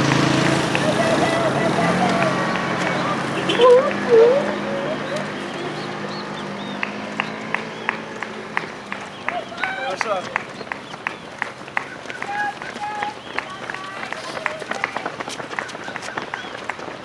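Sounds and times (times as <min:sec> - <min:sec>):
voices: 0:00.0 - 0:16.7
running footsteps on asphalt: 0:00.0 - 0:17.0.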